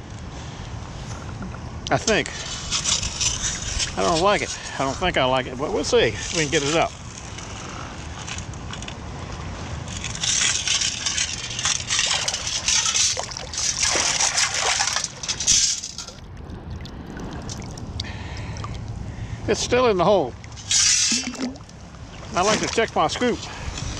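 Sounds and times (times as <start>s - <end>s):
water sloshing and splashing: 0.9s - 23.9s.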